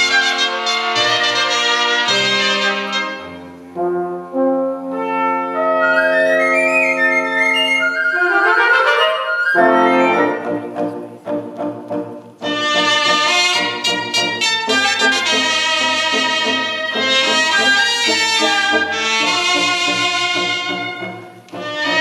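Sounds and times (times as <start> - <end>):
double-reed woodwinds: 0.0 - 22.0
trumpets: 0.0 - 22.0
wind band playing: 0.0 - 22.0
double bass: 9.6 - 22.0.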